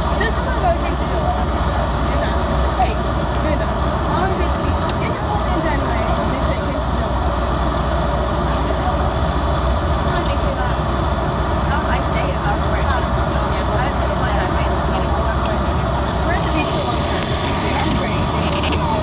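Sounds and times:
passengers talking indistinctly: 0.0 - 19.0
vehicle rumble from inside cabin: 0.0 - 19.0.

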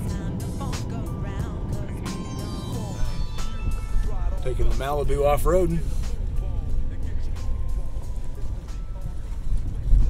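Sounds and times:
low rumble of tyres on dirt road: 3.0 - 10.0.

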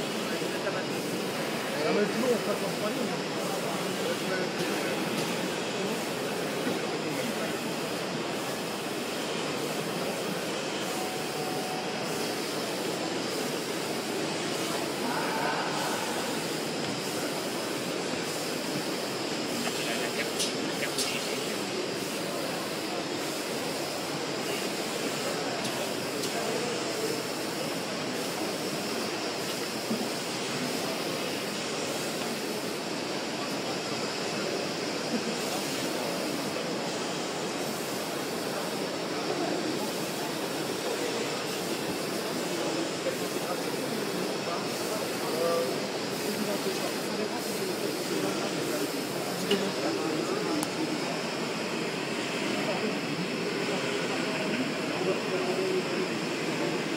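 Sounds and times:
exhibition hall din: 0.0 - 56.9.

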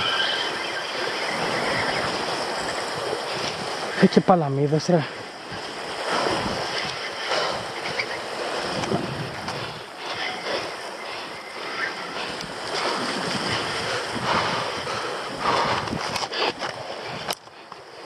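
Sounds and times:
sea waves against rocks: 0.0 - 18.0
wind buffeting microphone: 0.0 - 18.0.

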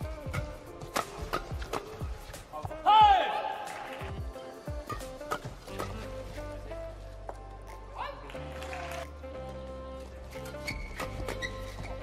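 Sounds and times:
racket hitting shuttlecock: 0.0 - 2.5, 4.7 - 6.2.

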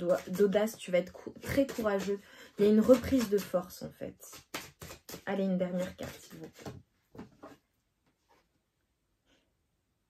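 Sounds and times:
cards rustling: 0.0 - 3.6.

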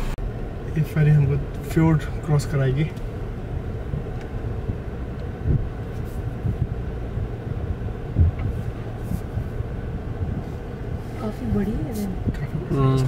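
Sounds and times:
car cabin rumble: 0.0 - 13.0
short low thumps: 3.0 - 13.0.

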